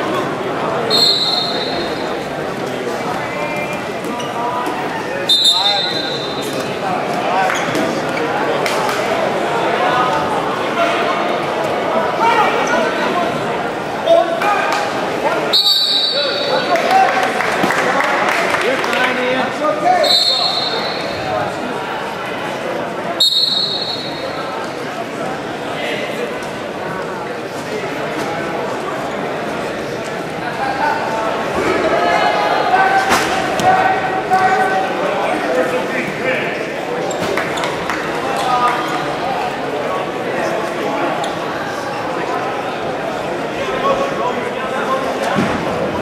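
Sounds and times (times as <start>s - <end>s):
spectators shouting and talking: 0.0s - 46.0s
referee's whistle blasts: 0.9s - 2.0s, 5.2s - 6.5s, 15.5s - 16.6s, 20.0s - 21.2s, 23.2s - 24.4s.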